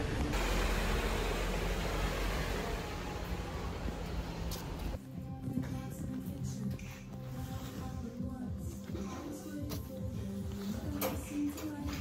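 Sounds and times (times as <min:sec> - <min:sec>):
city street hiss: 0:00.0 - 0:05.0
low traffic rumble: 0:00.0 - 0:05.0.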